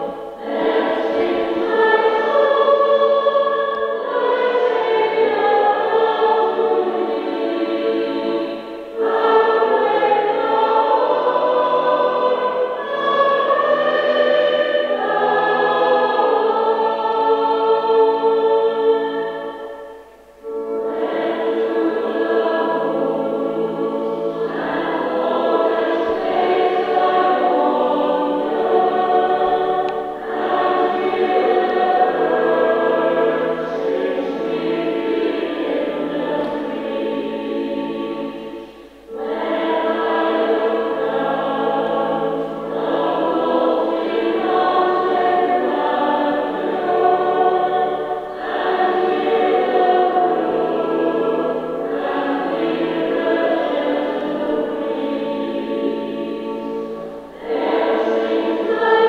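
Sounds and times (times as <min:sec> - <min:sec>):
choir singing sustained chords: 0:00.0 - 0:59.0.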